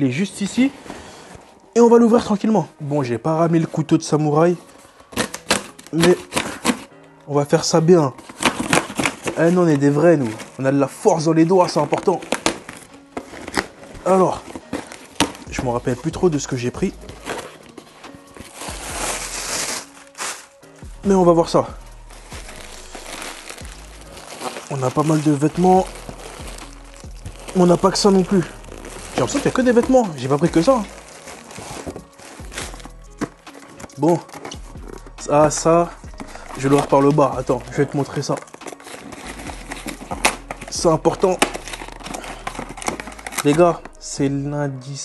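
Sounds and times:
faint background music: 0:00.0 - 0:45.0
plastic packaging rustling: 0:03.6 - 0:07.0, 0:07.7 - 0:20.8, 0:21.6 - 0:35.4, 0:36.1 - 0:44.0
cardboard box being torn open: 0:22.6 - 0:26.8, 0:41.4 - 0:43.6.

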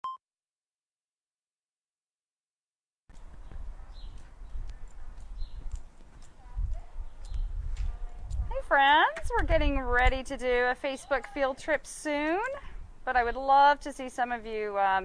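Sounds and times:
small clicks: 0:04.1 - 0:06.4
low rumbling microphone noise: 0:06.5 - 0:10.7.

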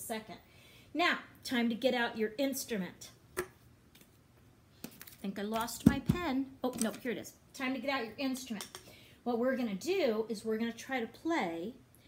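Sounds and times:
handling noise of objects: 0:03.6 - 0:07.1.

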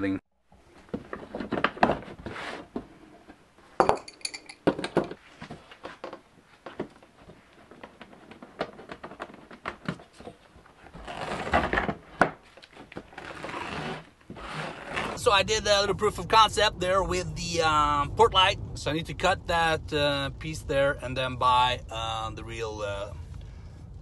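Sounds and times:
scraping and rubbing: 0:00.7 - 0:03.4, 0:06.6 - 0:15.3.

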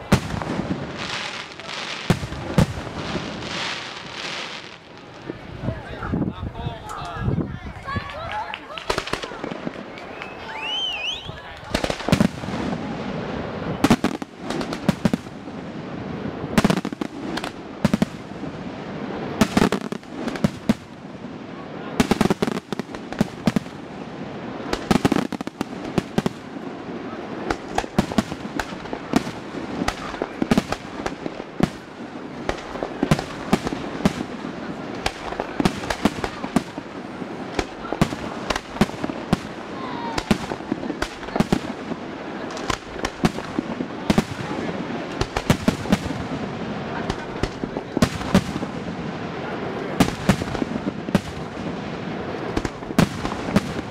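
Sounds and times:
fireworks bursts and crackling: 0:00.0 - 0:53.9.

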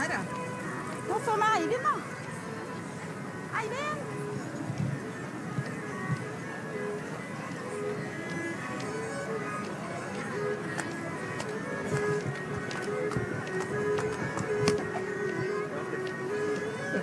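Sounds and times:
fiddles playing folk dance tune: 0:00.0 - 0:17.0.

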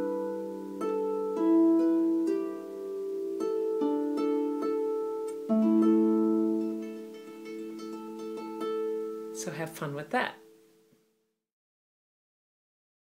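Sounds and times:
harp plucked notes: 0:00.0 - 0:10.9.

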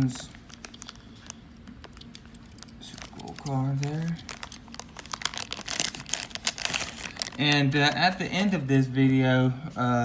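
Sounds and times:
foil bag crinkling: 0:00.0 - 0:09.2.

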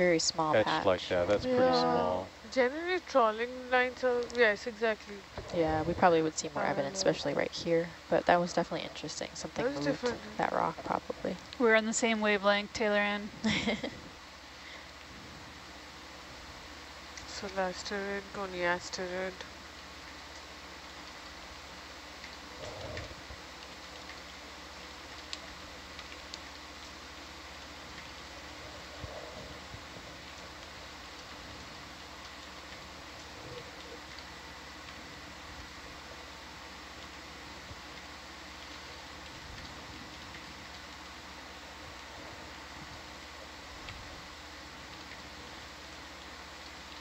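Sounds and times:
low electrical hum: 0:00.0 - 0:47.0
steady hiss: 0:00.0 - 0:47.0
faint clicks: 0:04.1 - 0:04.4, 0:22.2 - 0:35.7.

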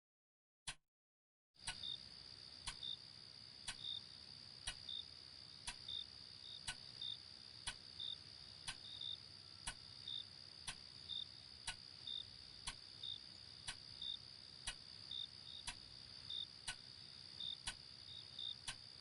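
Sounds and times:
crickets chirring: 0:01.6 - 0:19.0
clock ticking: 0:03.7 - 0:04.0, 0:04.6 - 0:05.0, 0:06.6 - 0:06.8, 0:07.6 - 0:07.8, 0:08.7 - 0:08.9, 0:11.6 - 0:11.8, 0:12.6 - 0:12.9, 0:13.7 - 0:14.8, 0:15.6 - 0:15.8, 0:16.7 - 0:17.8, 0:18.6 - 0:18.8.

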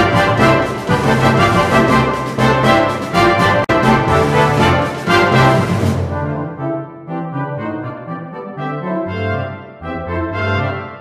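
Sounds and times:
brass band music: 0:00.0 - 0:11.0.

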